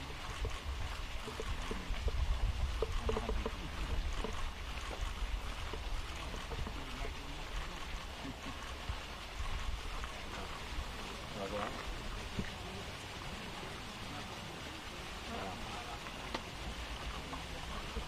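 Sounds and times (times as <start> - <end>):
low rumble of wind on microphone: 0.0 - 18.0
faint indistinct voices: 5.7 - 18.0.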